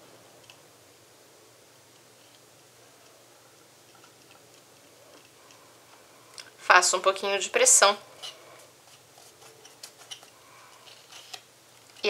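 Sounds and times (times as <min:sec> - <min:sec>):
paper rustling: 0:08.2 - 0:12.0.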